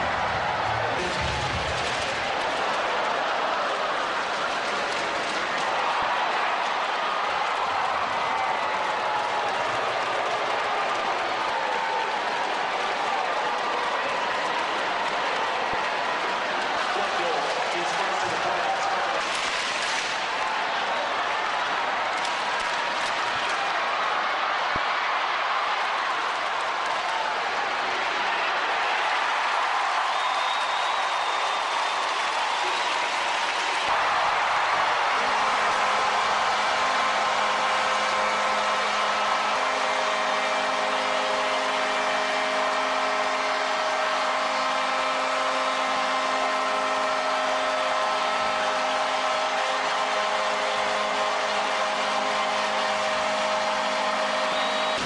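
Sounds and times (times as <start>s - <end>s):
crowd cheering: 0.0s - 55.0s.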